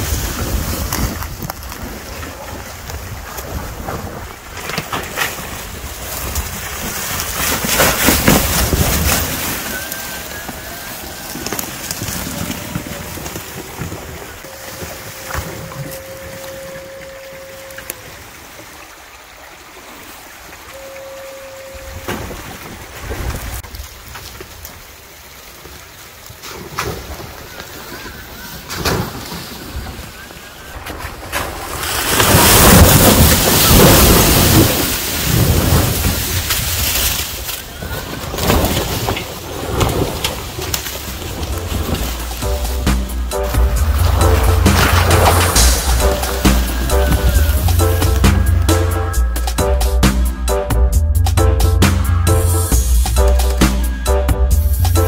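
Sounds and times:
tyres crackling over leaves: 0.0 - 20.1, 22.0 - 49.5
wind buffeting microphone: 26.9 - 42.9.

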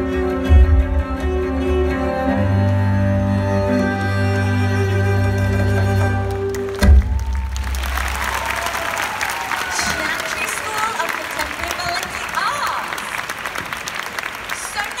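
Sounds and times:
audience applauding and cheering: 4.8 - 15.0.

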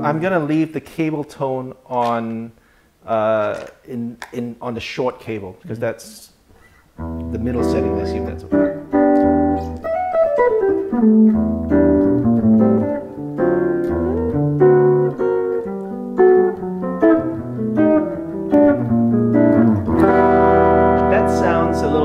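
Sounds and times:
electric guitar melodic run: 7.0 - 22.0.

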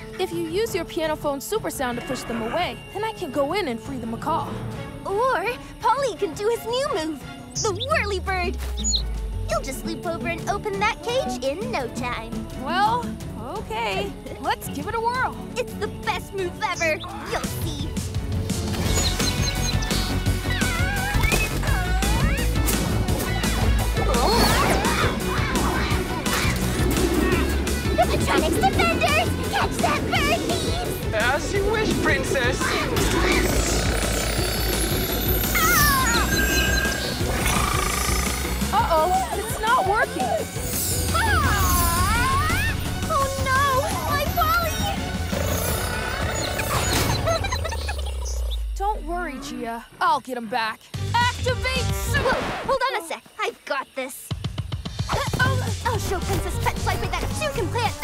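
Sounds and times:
cartoon action music: 5.1 - 48.7, 54.9 - 58.0
steady buzz: 25.1 - 38.8
sliding whistle-like sound effects: 35.4 - 38.5.

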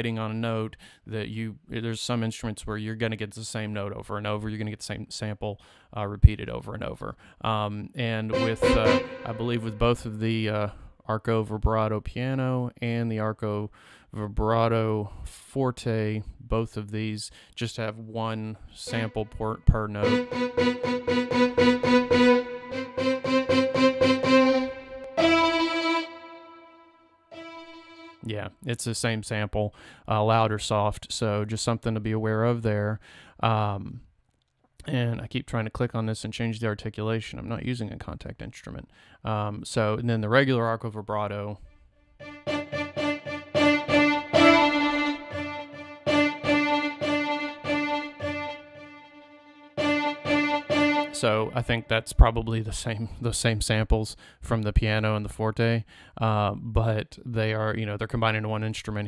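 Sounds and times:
solo violin notes: 8.3 - 10.3, 18.9 - 28.3, 42.2 - 52.2.

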